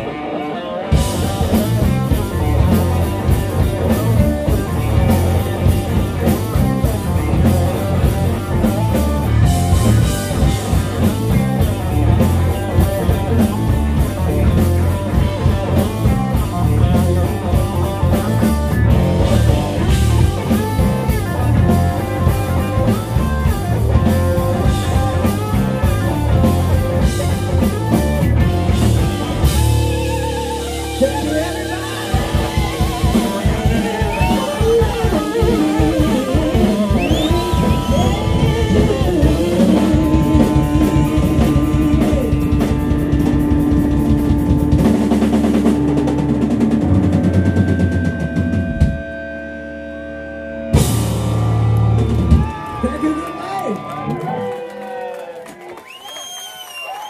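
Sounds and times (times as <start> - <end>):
drum kit: 0.0 - 49.5, 50.6 - 54.4
bending guitar notes: 0.0 - 52.8
electric guitars: 0.0 - 57.0.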